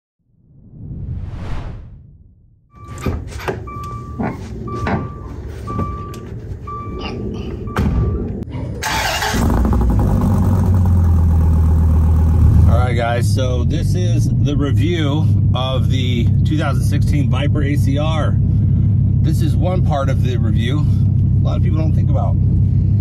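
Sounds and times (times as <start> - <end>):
whoosh: 0.2 - 2.8
knocks and clunks: 2.8 - 8.5
car engine starting and idling: 2.8 - 23.0.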